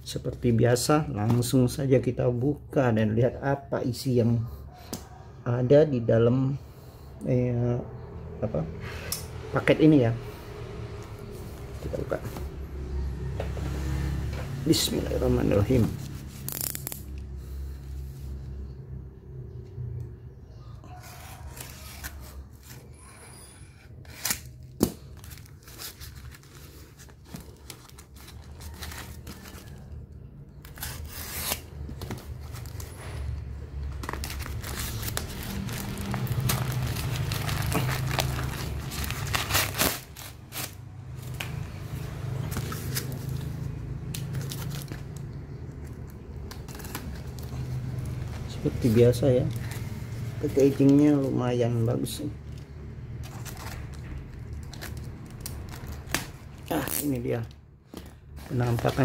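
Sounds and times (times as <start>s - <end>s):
plastic crinkling and ripping: 15.6s - 17.2s, 24.1s - 41.6s, 42.3s - 51.2s, 53.1s - 59.0s
knife cutting plastic mailer: 24.0s - 29.8s, 34.0s - 40.8s.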